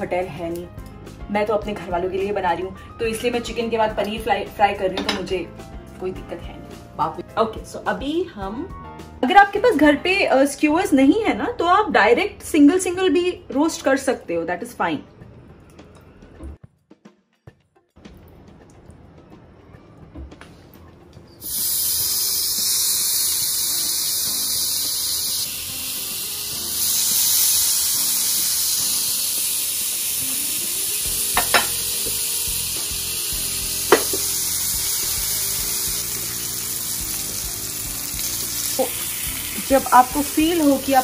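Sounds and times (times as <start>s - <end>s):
food sizzling on grill pan: 21.4s - 41.0s.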